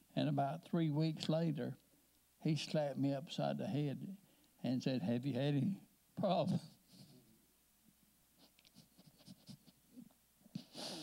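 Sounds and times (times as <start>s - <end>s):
faint ticks and rustles: 8.4s - 10.6s.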